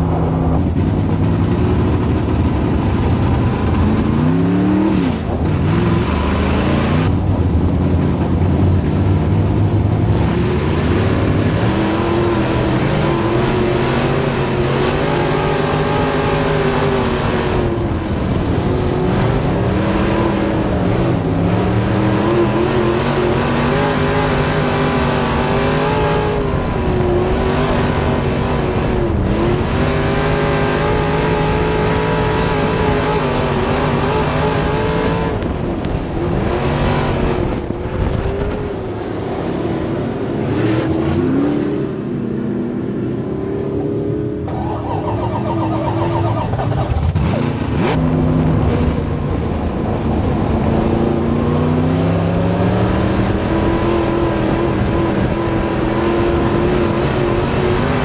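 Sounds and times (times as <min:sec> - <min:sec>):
race car engine revving: 0:00.0 - 0:58.0.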